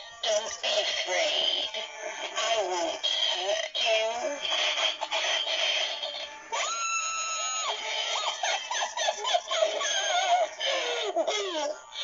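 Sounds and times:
spooky music: 0.0 - 12.0
witch voice: 0.2 - 6.7
wavering laugh-like voice: 4.4 - 12.0.

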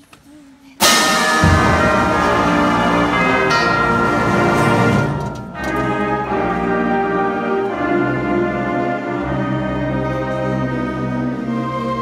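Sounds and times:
concert band playing: 0.8 - 9.5.

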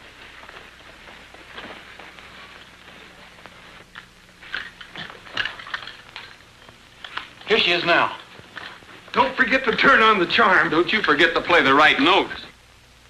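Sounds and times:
film soundtrack hiss and crackle: 0.0 - 13.0.

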